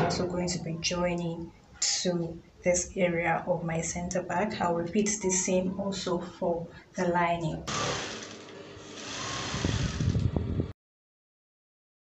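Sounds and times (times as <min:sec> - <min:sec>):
sewing machine stitching: 0:07.7 - 0:10.2.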